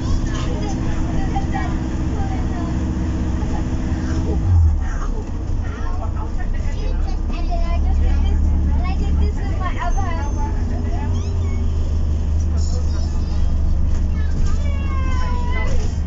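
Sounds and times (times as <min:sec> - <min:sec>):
bus drivetrain hum: 0:00.0 - 0:16.0
passengers talking: 0:00.0 - 0:16.0.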